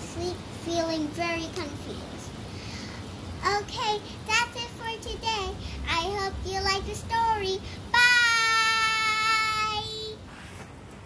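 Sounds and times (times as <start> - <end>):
faint room hiss: 0.0 - 11.0
girl singing long note: 7.9 - 10.2.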